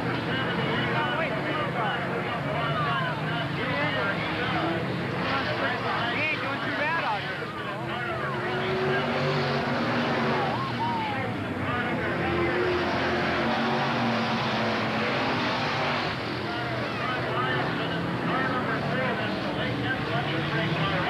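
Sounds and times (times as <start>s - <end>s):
stock car engines racing: 0.0s - 21.0s.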